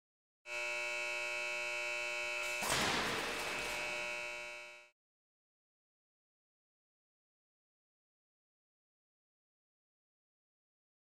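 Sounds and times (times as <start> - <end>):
machinery hum: 0.5 - 4.9.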